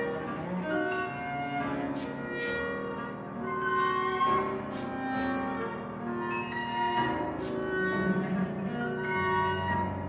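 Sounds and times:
cello: 0.0s - 10.0s
clarinet: 0.0s - 10.0s
flute: 0.0s - 10.0s
piano: 0.0s - 10.0s.

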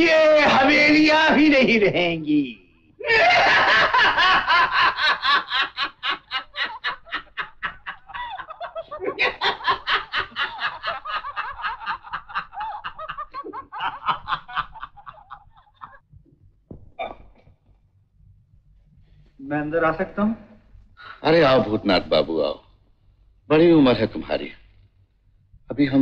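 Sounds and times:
man laughing loudly: 3.0s - 16.0s.

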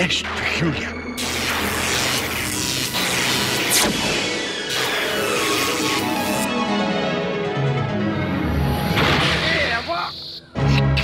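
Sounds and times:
dramatic soundtrack music: 0.0s - 11.0s
loud music hit: 0.2s - 10.0s
cartoon crash: 1.2s - 6.5s, 8.9s - 10.1s.

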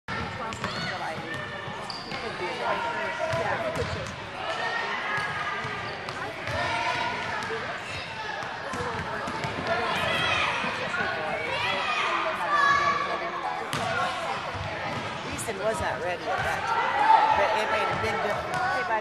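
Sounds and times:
children and adults shouting: 9.8s - 13.2s, 16.6s - 18.7s.

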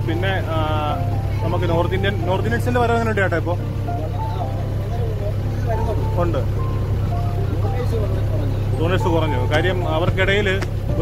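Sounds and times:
boat motor droning: 0.0s - 11.0s
people talking: 0.0s - 11.0s.

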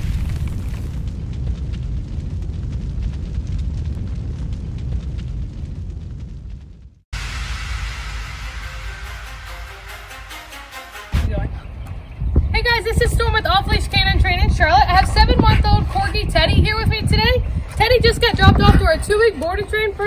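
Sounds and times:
deep rumbling low sound: 0.0s - 10.2s
music: 7.8s - 11.8s.

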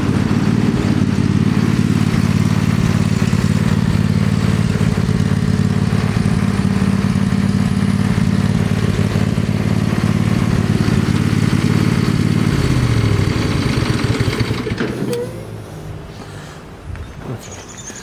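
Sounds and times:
lawn mower engine running: 0.0s - 16.2s.

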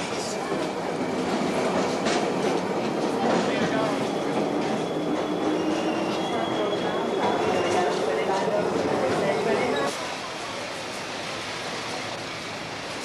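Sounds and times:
crowd voices: 0.0s - 12.3s.

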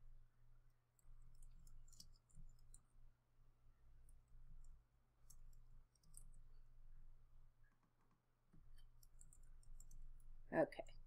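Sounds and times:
low steady hum: 0.0s - 11.0s
keyboard and mouse clicking: 9.0s - 10.1s.

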